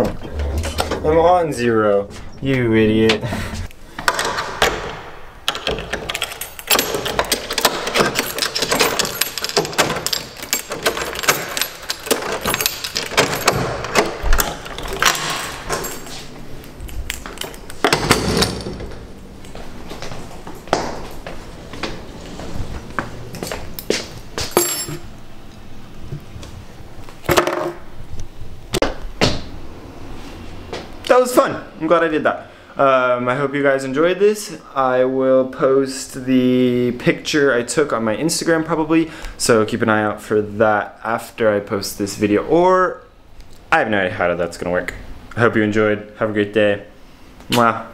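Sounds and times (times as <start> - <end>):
key turning in metal lock: 5.5 - 16.2
keys jangling: 5.8 - 18.9, 23.3 - 25.1.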